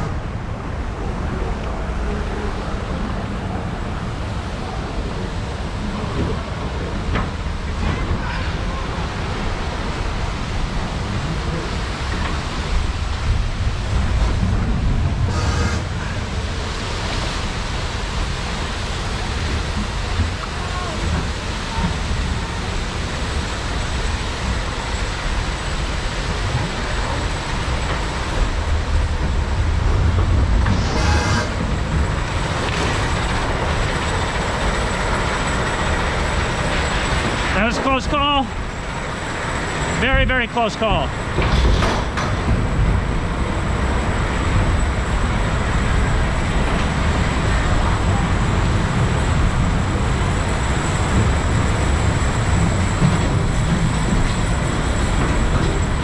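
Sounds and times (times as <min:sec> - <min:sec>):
water rushing: 0:00.0 - 0:56.0.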